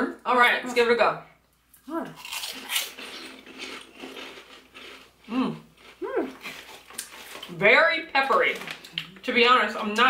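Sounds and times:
pork rinds crunching: 2.2 - 7.5.

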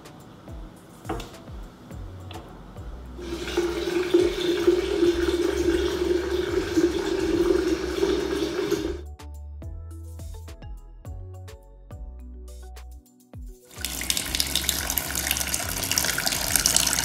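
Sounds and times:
soft background music: 0.0 - 17.0
water running from kitchen tap: 3.2 - 9.0, 13.7 - 17.0.

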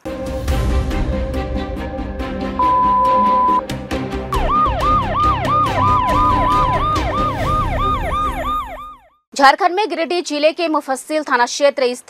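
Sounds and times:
steady held tone: 2.6 - 3.6
synthetic siren yelping: 2.6 - 3.6, 4.3 - 9.2
music with regular beat: 2.6 - 8.4.

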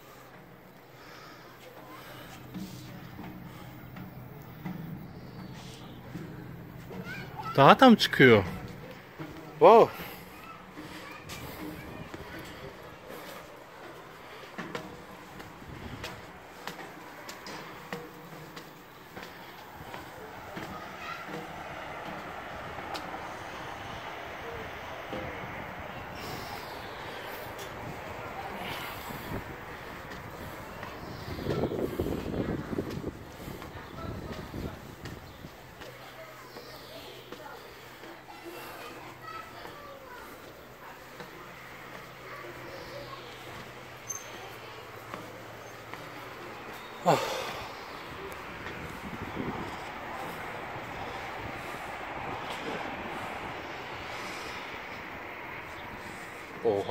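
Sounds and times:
faint distant voices: 0.0 - 56.9
footsteps on metal stairs: 0.2 - 56.9
wind on microphone: 21.6 - 35.6, 48.3 - 56.3.

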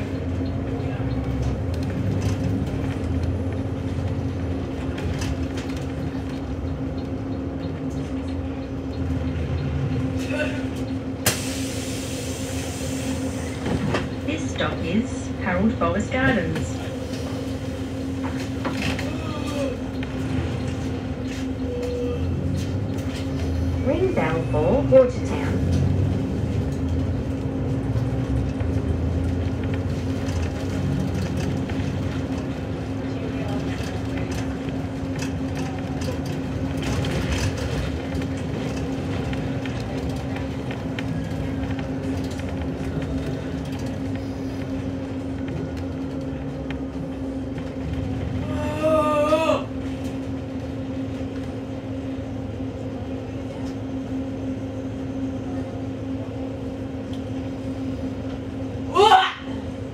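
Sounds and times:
bus drivetrain hum: 0.0 - 59.9
road rumble: 0.0 - 59.9.

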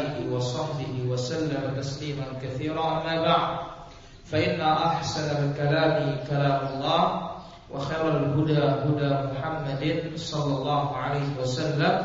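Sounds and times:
man chanting recitation: 0.0 - 12.0.

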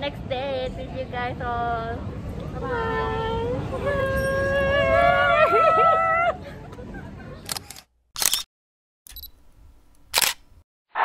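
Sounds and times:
sharp shutter clicks: 7.5 - 8.5, 10.0 - 11.0.

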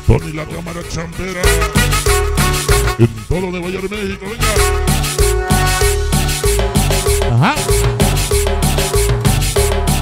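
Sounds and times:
live cumbia band: 0.0 - 10.0
guiro rasping: 1.4 - 8.0.

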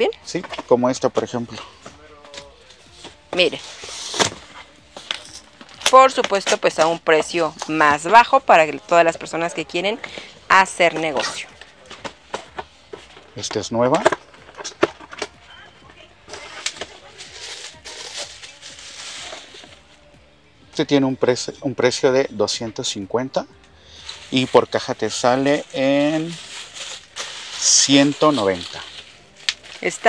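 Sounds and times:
bubble wrap crinkling: 1.6 - 20.1, 23.9 - 30.0
cardboard flaps scraping and rustling: 3.0 - 5.2.

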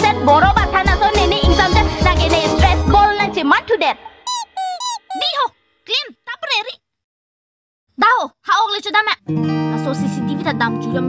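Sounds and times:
squeaky ball squeaking: 4.3 - 5.5.

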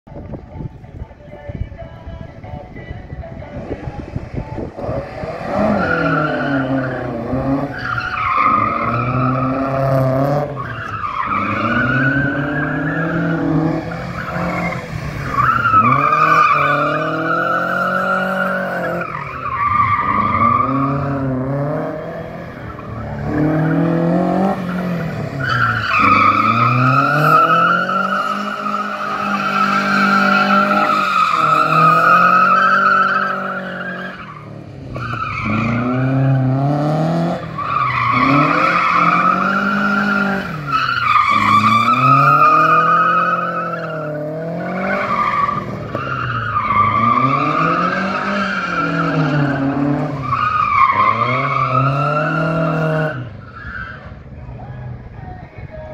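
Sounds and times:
truck engine revving: 3.6 - 53.4
tyres squealing: 22.6 - 36.5, 37.4 - 54.1.

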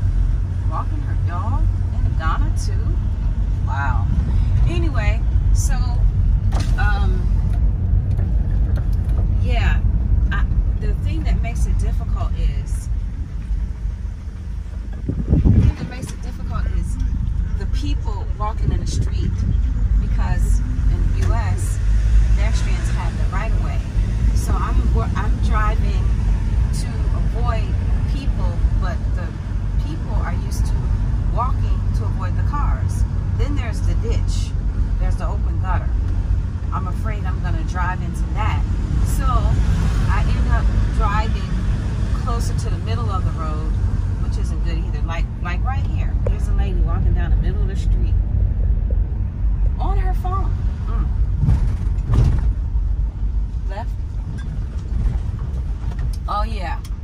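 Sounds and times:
engine and road rumble: 0.0 - 57.0.

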